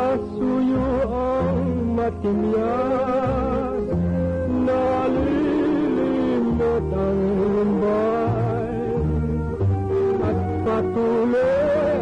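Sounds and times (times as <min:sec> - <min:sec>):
song playing on radio: 0:00.0 - 0:12.0.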